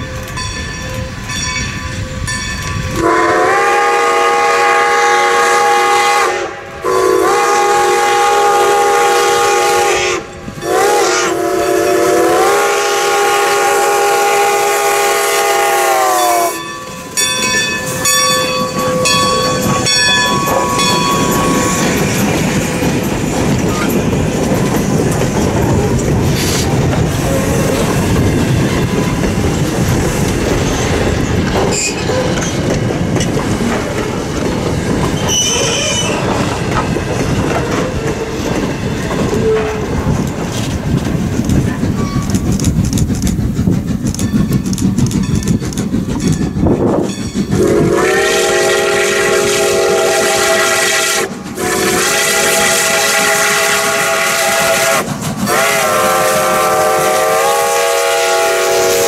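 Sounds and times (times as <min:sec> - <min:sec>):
bell ringing: 0:00.0 - 0:03.0, 0:16.6 - 0:22.0
train rumbling and clattering on rails: 0:00.0 - 0:59.0
steam whistle blasts: 0:02.9 - 0:16.7, 0:47.5 - 0:59.0.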